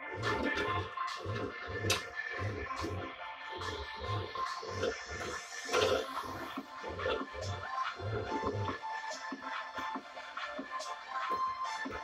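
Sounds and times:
music with a steady beat: 0:00.0 - 0:12.0.

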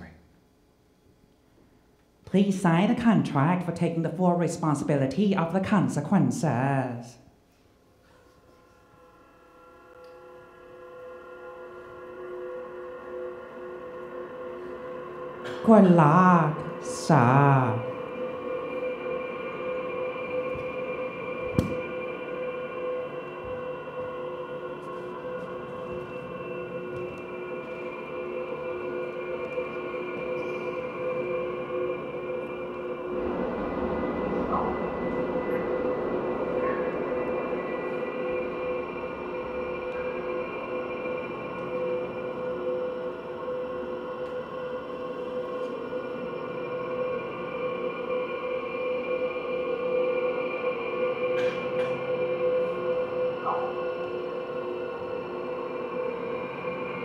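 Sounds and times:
electronic drone: 0:08.7 - 0:57.0.

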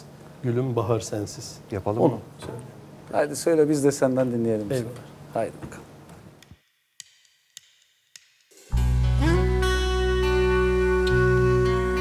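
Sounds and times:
live band playing: 0:08.7 - 0:12.0
low bass notes: 0:08.7 - 0:12.0
sliding held melody note: 0:08.8 - 0:12.0.

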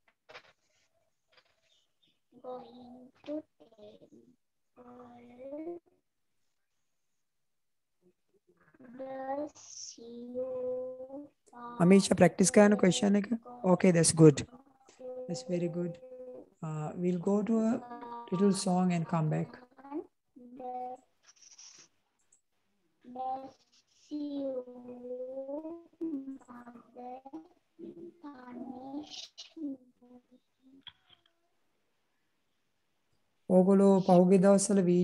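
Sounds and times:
child's voice drawing out syllables: 0:08.8 - 0:11.9, 0:17.4 - 0:21.1, 0:23.0 - 0:30.8
short scratchy hiss: 0:21.2 - 0:22.0.

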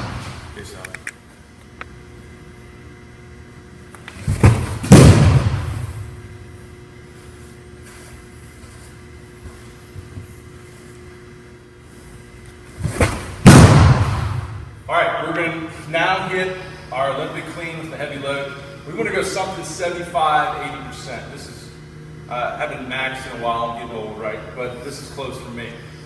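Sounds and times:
low steady hum: 0:00.0 - 0:26.0
baseball thudding into netting: 0:04.2 - 0:06.2, 0:12.8 - 0:14.7.

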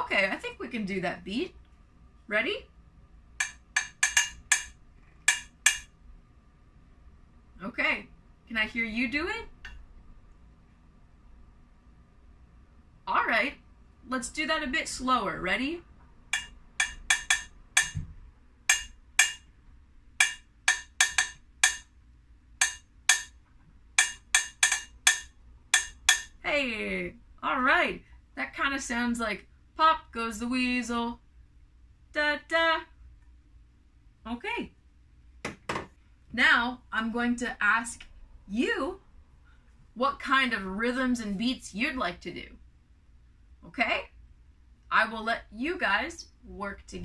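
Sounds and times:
wooden spoon striking saucepan: 0:03.4 - 0:05.9, 0:16.3 - 0:18.1, 0:18.7 - 0:19.5, 0:20.2 - 0:21.9, 0:22.6 - 0:23.4, 0:24.0 - 0:26.4.

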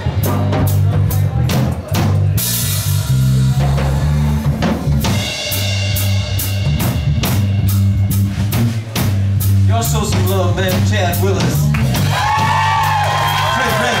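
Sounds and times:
drum kit beat: 0:00.0 - 0:14.0
electric bass line: 0:00.0 - 0:14.0.

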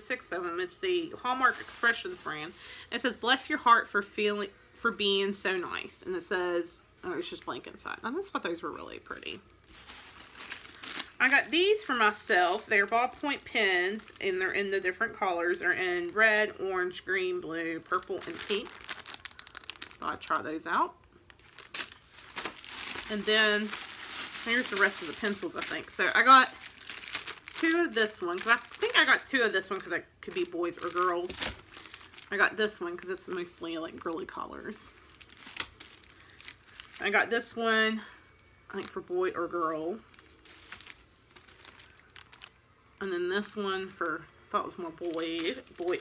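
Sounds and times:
plastic packaging crinkling: 0:01.2 - 0:03.1, 0:09.2 - 0:16.6, 0:17.8 - 0:37.6, 0:38.3 - 0:44.2, 0:44.8 - 0:46.0.

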